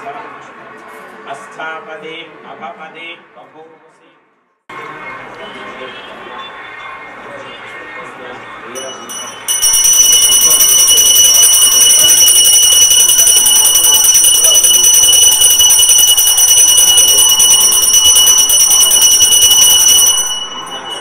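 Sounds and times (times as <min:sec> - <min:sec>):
bell ringing rapidly: 0:08.8 - 0:21.0.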